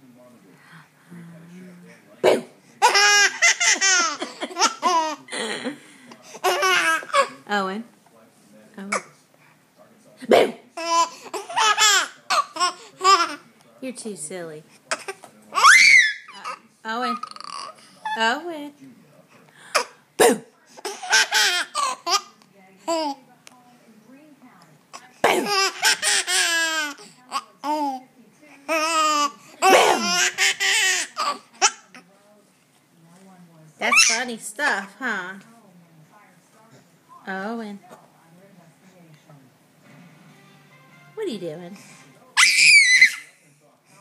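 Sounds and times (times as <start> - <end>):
baby laughing: 2.8 - 5.2, 6.4 - 7.4, 10.8 - 13.4, 20.8 - 22.3, 25.3 - 27.0, 28.7 - 31.8
baby squealing: 15.6 - 16.5, 42.4 - 43.3.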